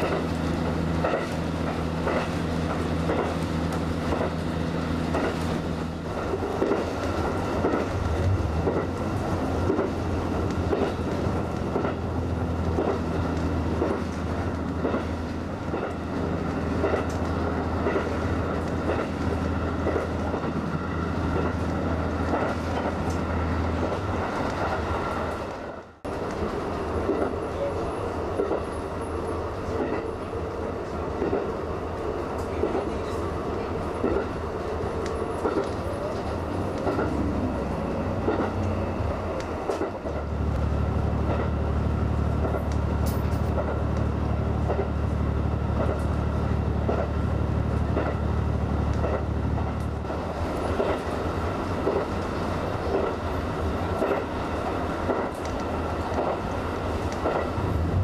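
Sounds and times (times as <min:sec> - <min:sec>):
train running hum: 0:00.0 - 0:58.0
wheels clicking over rail joints: 0:00.0 - 0:58.0.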